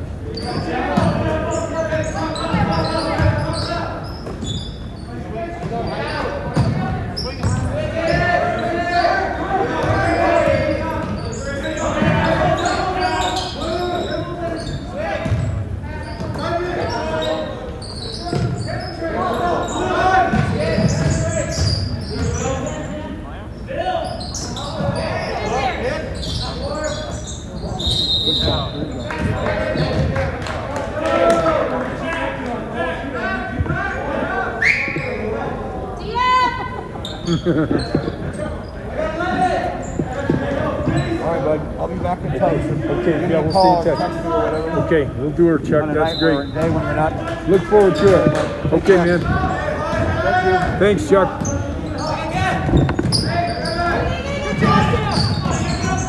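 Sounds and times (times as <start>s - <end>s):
people talking: 0.2s - 56.0s
whistle blast: 34.6s - 35.1s
basketball bouncing on hardwood floor: 52.6s - 53.3s.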